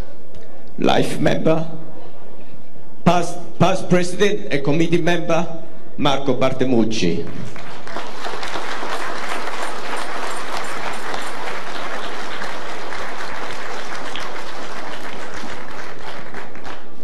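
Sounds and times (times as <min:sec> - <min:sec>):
audience applauding: 0:07.3 - 0:17.0.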